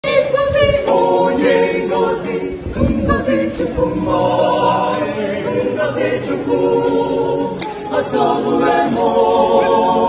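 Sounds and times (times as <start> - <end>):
a cappella choir singing: 0.0 - 10.0.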